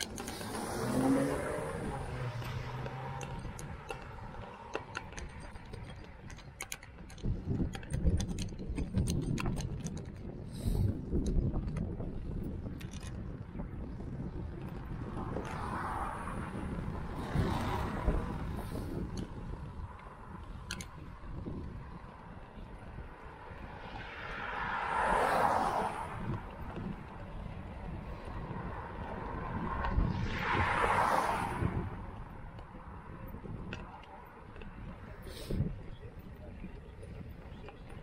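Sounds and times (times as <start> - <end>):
wind rumble on microphone: 0.0 - 38.0
tyre hiss of passing traffic: 0.2 - 3.1, 24.1 - 26.3, 30.0 - 31.9.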